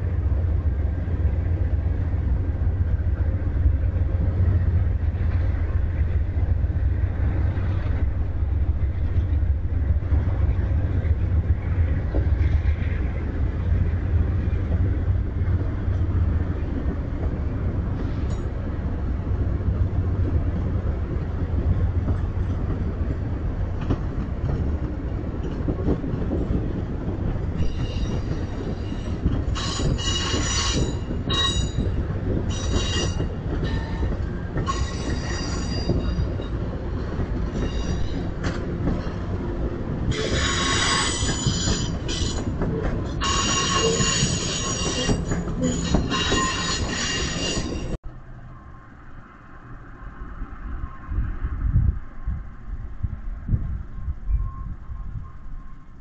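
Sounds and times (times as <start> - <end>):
train wheels rumbling on rail: 0.0 - 56.0
metallic wheel squeal: 27.6 - 31.9, 32.5 - 36.5, 37.6 - 38.3, 43.1 - 48.0.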